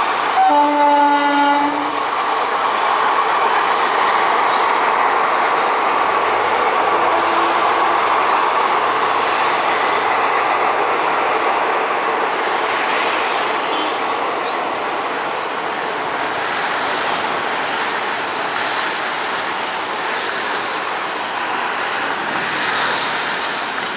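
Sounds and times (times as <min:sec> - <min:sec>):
train wheels rumbling on bridge: 0:00.0 - 0:23.9.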